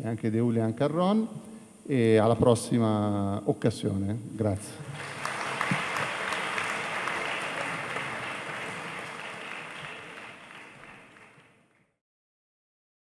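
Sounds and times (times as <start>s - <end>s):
audience applauding: 4.8s - 11.9s.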